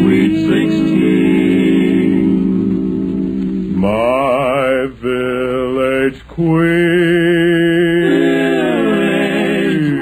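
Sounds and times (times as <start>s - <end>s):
male quartet singing in harmony: 0.0s - 10.0s.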